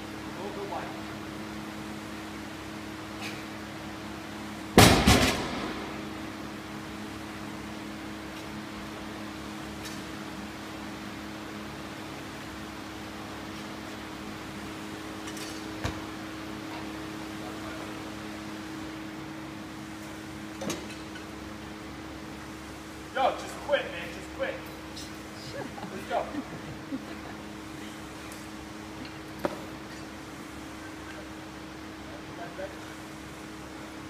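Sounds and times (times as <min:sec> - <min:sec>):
floor fan hum: 0:00.0 - 0:34.0
barbell crashing onto rubber mat: 0:04.8 - 0:06.0.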